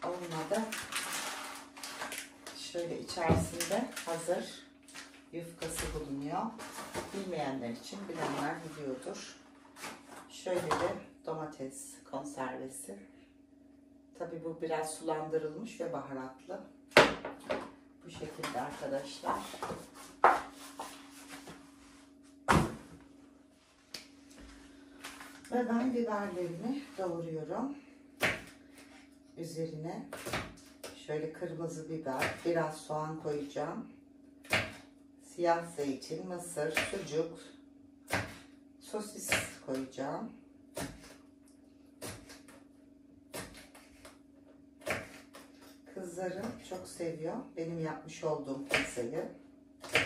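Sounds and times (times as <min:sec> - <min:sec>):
faint steady hum: 0:00.0 - 0:50.0.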